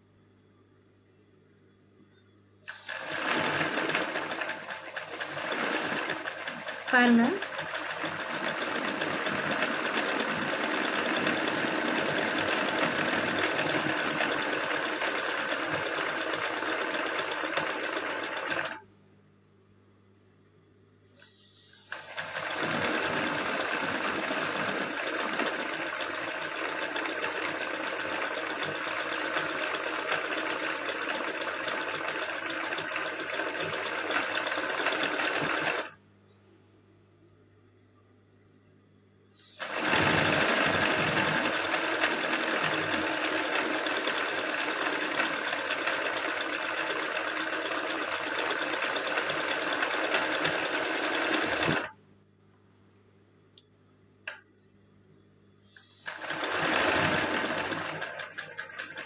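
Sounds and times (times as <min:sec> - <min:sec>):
sewing machine stitching: 0:02.7 - 0:18.8, 0:21.9 - 0:36.0, 0:39.4 - 0:52.0, 0:55.8 - 0:59.0.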